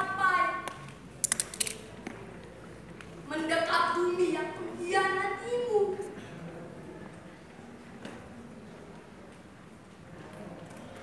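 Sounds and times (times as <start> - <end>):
sharp clicks: 0.7 - 1.8.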